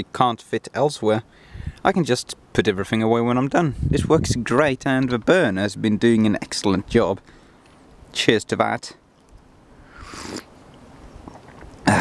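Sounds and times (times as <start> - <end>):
person sipping a drink: 9.9 - 12.0.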